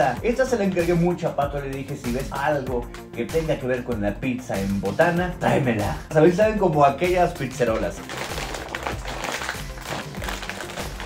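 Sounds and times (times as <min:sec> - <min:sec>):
background music: 0:00.0 - 0:11.0
foil chip bag crinkling: 0:07.7 - 0:11.0.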